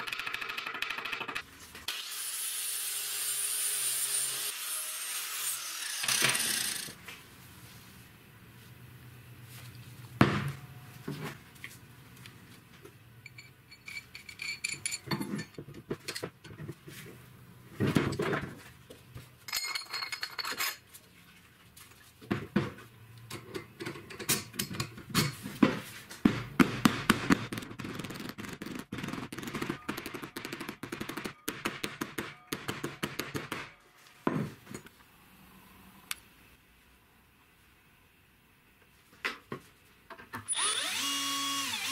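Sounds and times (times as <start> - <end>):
metal clinks: 13.2 - 15.6.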